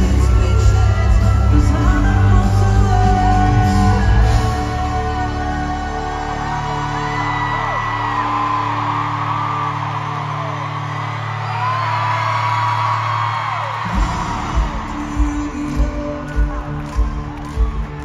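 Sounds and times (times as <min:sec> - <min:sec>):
live band music: 0:00.0 - 0:06.4
crowd screaming and whooping: 0:00.0 - 0:18.0.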